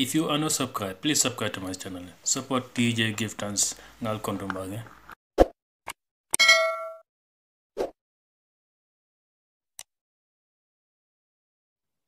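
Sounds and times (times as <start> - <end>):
bell ding: 6.4 - 7.0.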